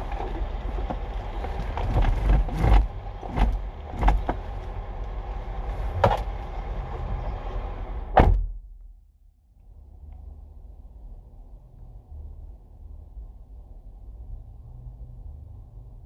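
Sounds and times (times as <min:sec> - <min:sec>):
low rumble in car cabin: 0:00.0 - 0:16.0.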